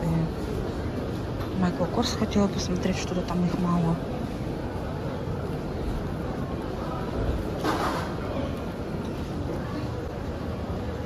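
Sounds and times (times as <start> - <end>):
low rumble of airport terminal: 0.0 - 11.0.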